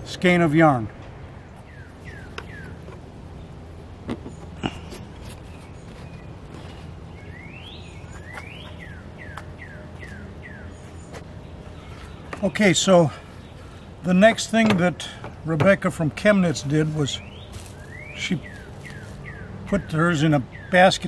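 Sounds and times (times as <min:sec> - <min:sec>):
birds chirping: 0:00.0 - 0:21.0
low background hum: 0:00.0 - 0:21.0.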